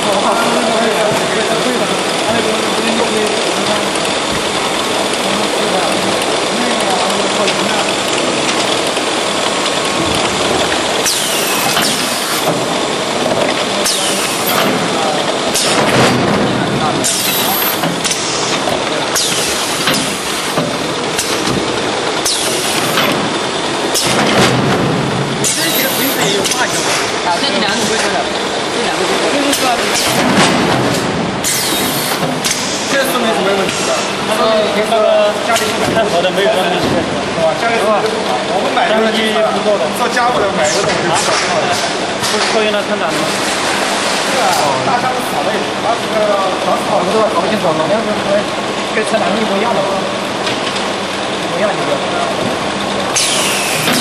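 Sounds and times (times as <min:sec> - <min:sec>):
loud machine noise: 0:00.0 - 0:54.0
packer noisy bursts: 0:01.8 - 0:27.3, 0:28.2 - 0:34.3, 0:53.0 - 0:54.0.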